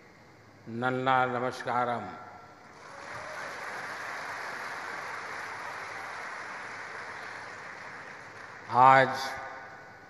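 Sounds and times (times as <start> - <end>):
large audience applauding: 2.6 - 9.3.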